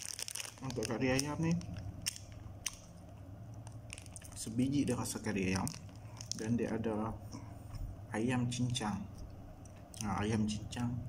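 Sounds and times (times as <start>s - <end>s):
plastic packet crinkling: 0.0s - 6.8s.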